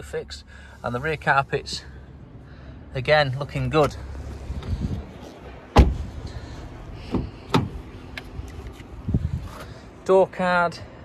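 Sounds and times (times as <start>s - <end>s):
car door knocks: 5.7s - 6.0s
car door thud: 5.7s - 6.1s, 7.1s - 7.8s.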